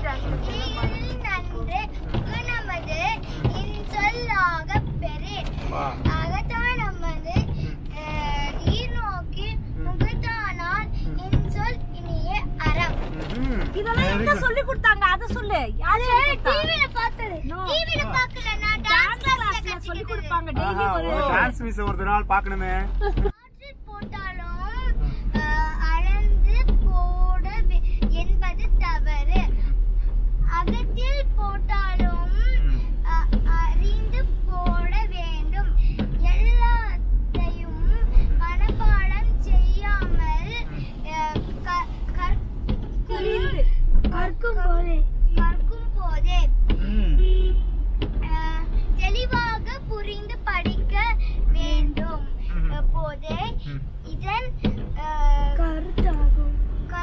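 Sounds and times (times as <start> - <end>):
car cabin rumble: 0.0 - 57.0.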